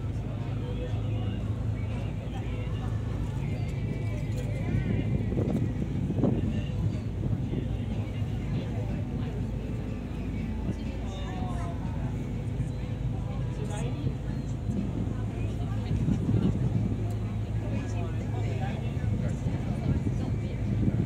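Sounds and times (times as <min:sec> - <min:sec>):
ferry engines droning: 0:00.0 - 0:21.0
people talking faintly: 0:00.0 - 0:21.0
wind: 0:00.0 - 0:21.0.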